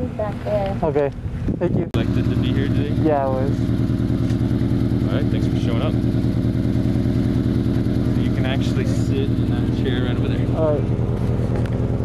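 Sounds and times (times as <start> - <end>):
combustion engine running: 0.0 - 12.0.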